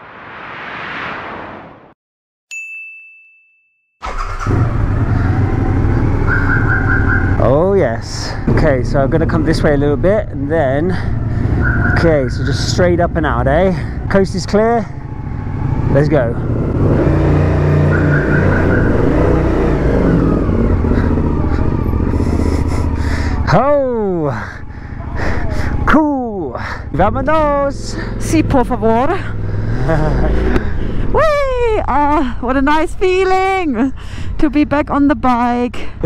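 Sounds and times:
high ringing ding: 0:02.5 - 0:03.8
motorcycle engine pulling away: 0:04.0 - 0:07.6, 0:15.0 - 0:23.4.

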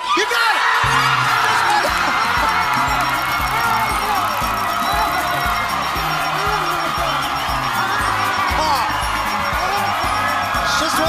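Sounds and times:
audience cheering and whooping: 0:00.0 - 0:11.0
person screaming with joy: 0:00.0 - 0:11.0
game show music with steady beat: 0:00.8 - 0:11.0.

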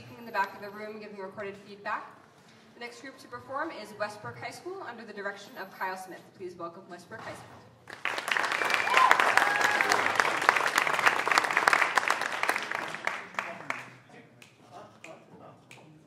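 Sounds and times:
audience applauding: 0:07.9 - 0:14.0
brief cheer: 0:08.6 - 0:10.2.

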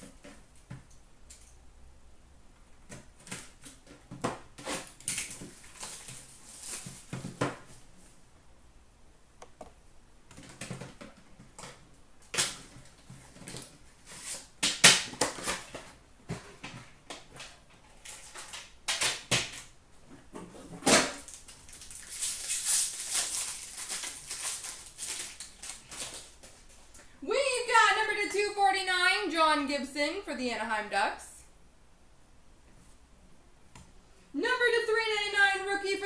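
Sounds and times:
wrapping rustling and tearing: 0:04.6 - 0:07.4, 0:17.4 - 0:18.7, 0:21.2 - 0:27.0
person speaking: 0:27.2 - 0:31.6, 0:34.3 - 0:36.0.

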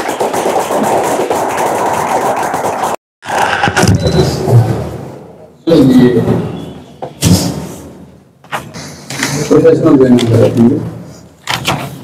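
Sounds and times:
crowd applauding: 0:00.0 - 0:03.0.

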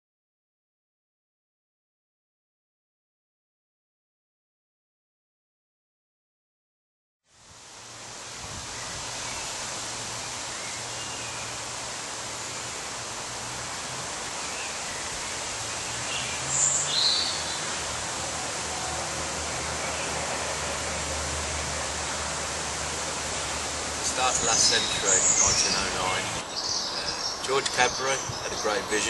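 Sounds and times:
rushing outdoor background noise: 0:07.3 - 0:29.0.

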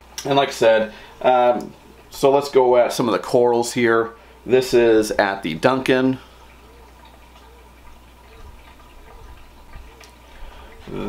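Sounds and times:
faint water trickling and dripping: 0:00.0 - 0:11.0.

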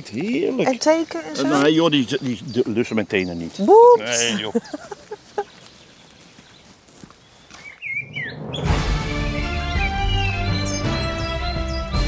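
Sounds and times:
faint outdoor background: 0:00.0 - 0:12.0
music with long held notes: 0:08.7 - 0:12.0.

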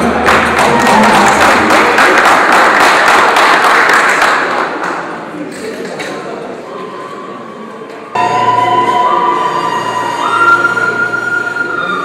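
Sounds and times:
loud high-pitched held tones: 0:08.2 - 0:12.0.

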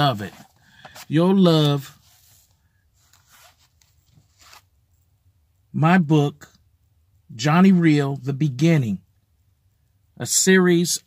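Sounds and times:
book rustling: 0:00.0 - 0:04.7.

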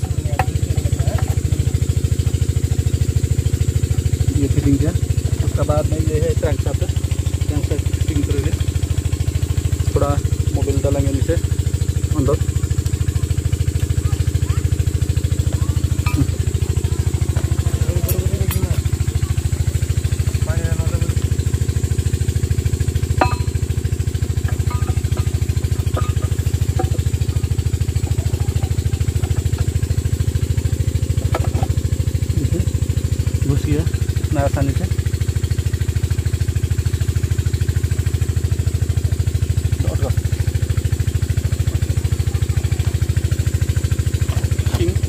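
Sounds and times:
engine running steadily: 0:00.0 - 0:45.0.

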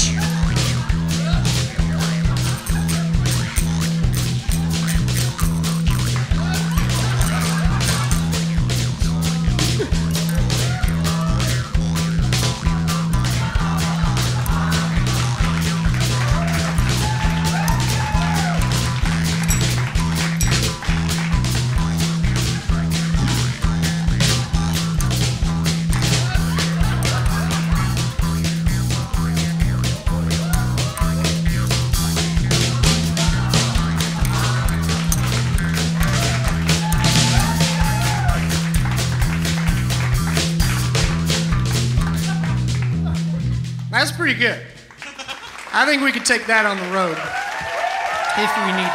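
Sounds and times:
jaw harps twanging: 0:00.0 - 0:42.4
bass guitar: 0:00.0 - 0:45.0
live band music: 0:00.0 - 0:45.0
drums: 0:00.0 - 0:48.9.

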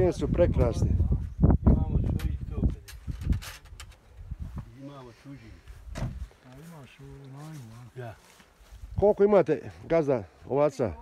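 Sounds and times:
men talking outdoors: 0:00.0 - 0:11.0.

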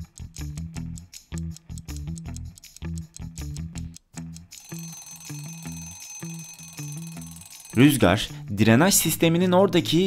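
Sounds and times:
background music with low notes: 0:00.0 - 0:10.0
alarm clock bell ringing: 0:04.6 - 0:08.4.

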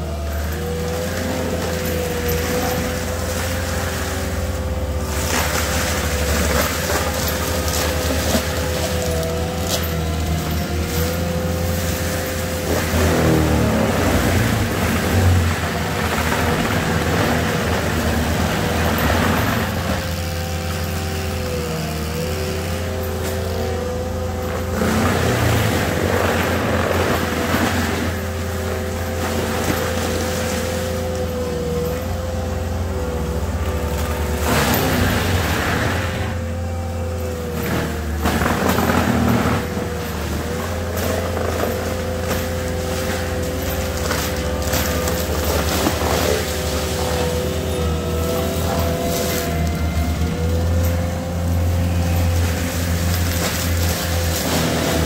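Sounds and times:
diesel engine and mulcher drone: 0:00.0 - 0:55.0
mulcher grinding brush: 0:00.0 - 0:55.0.

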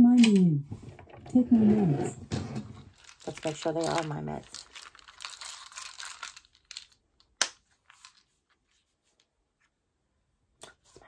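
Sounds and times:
plastic rustling: 0:01.8 - 0:09.3.

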